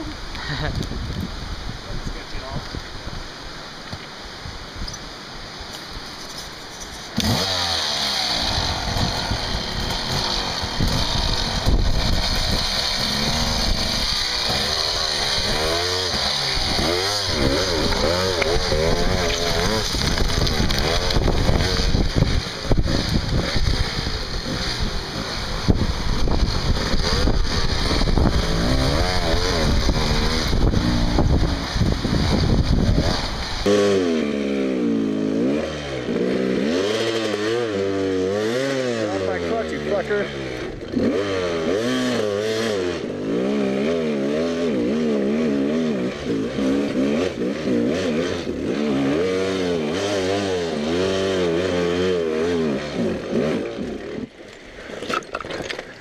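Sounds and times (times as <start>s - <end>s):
dirt bike engine revving: 6.9s - 54.4s.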